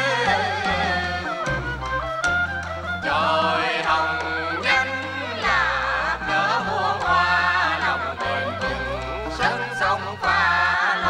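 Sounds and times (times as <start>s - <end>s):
women singing opera melody: 0.0s - 1.8s, 3.0s - 11.0s
instrumental accompaniment: 0.0s - 11.0s.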